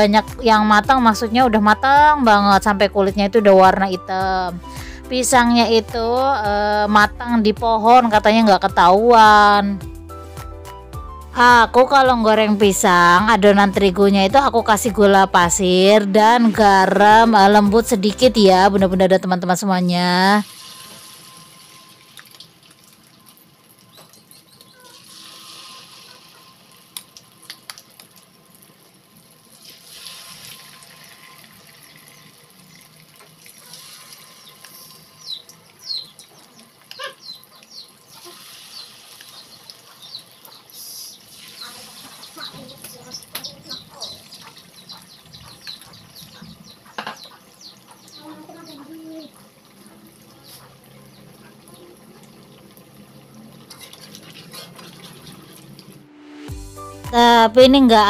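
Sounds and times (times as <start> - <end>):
food deep-frying in oil: 20.4 - 45.8, 46.6 - 55.9.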